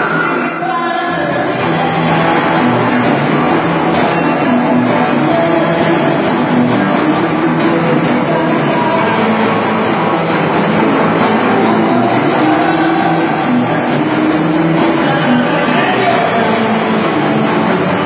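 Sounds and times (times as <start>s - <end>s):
live rock band playing: 0.0s - 18.0s.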